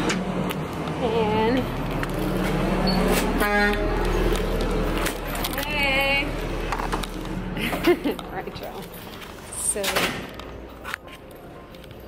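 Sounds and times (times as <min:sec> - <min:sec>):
vehicle horn toot: 0:03.2 - 0:04.0.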